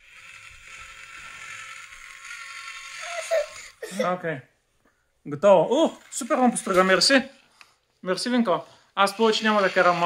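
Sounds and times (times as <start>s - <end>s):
toy drill whirring: 0.0s - 4.1s, 9.0s - 10.0s.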